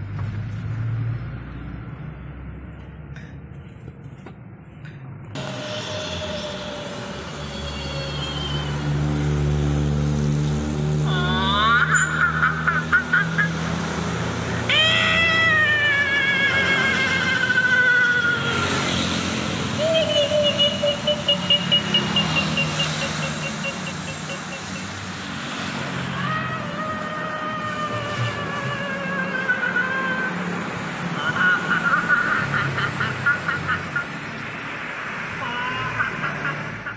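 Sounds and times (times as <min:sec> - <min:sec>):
road traffic: 0:00.0 - 0:36.9.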